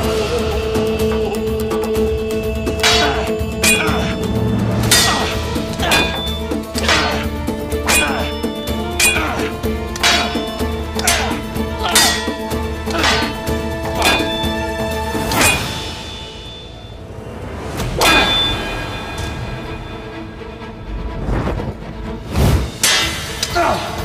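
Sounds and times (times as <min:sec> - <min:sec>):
sabres clashing: 0:02.8 - 0:16.9, 0:17.8 - 0:19.7, 0:22.8 - 0:24.0.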